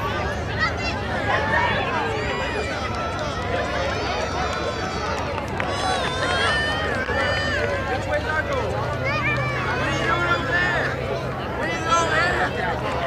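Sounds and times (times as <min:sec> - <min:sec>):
children and adults talking: 0:00.0 - 0:13.0.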